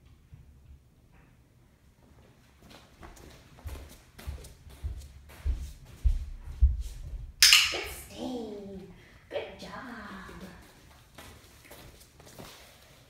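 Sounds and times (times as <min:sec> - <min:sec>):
heavy footsteps on floor: 0:02.6 - 0:07.4.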